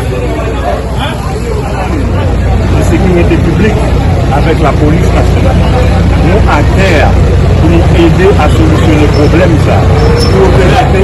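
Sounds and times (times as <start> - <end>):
crowd talking: 0.0 - 11.0
traffic rumble: 0.0 - 11.0.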